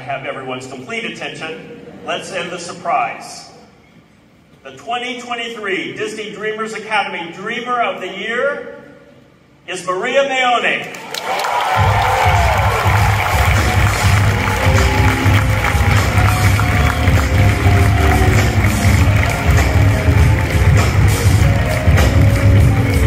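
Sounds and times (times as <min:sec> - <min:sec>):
audience cheering and applauding: 0:10.9 - 0:23.0
live band with heavy bass beat: 0:11.8 - 0:23.0.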